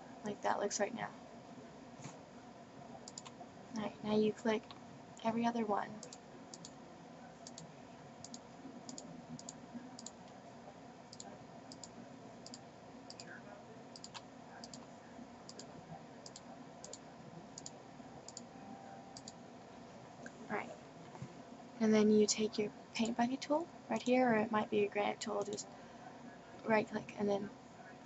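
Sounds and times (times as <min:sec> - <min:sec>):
computer mouse clicks: 0:03.0 - 0:03.9, 0:06.0 - 0:06.8, 0:07.4 - 0:10.4, 0:11.1 - 0:13.3, 0:14.0 - 0:14.9, 0:15.5 - 0:17.0, 0:17.6 - 0:18.5, 0:19.2 - 0:19.4, 0:25.4 - 0:25.6.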